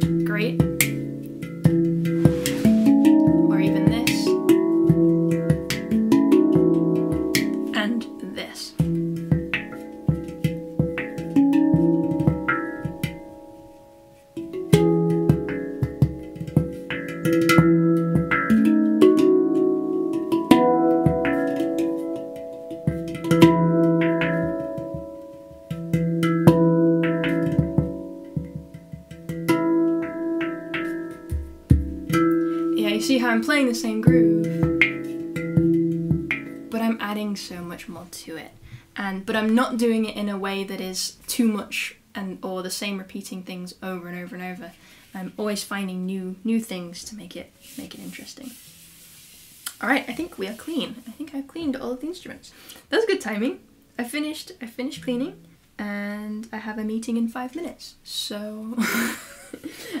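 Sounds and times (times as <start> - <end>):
finger taps on handpan: 0.0 - 7.8, 8.8 - 13.3, 14.4 - 32.7, 34.0 - 36.7
handpan ringing steel notes: 0.0 - 38.8, 53.1 - 55.6.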